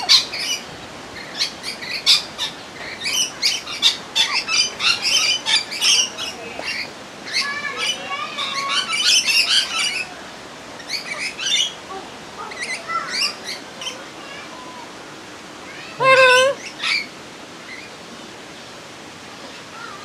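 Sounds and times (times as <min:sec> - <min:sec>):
cockatoo squawking and chattering: 0:16.0 - 0:17.0.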